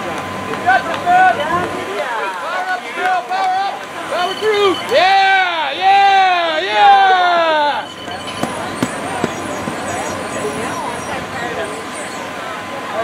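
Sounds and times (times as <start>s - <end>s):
crowd chatter: 0.0s - 13.0s
person shouting encouragement: 4.9s - 7.8s.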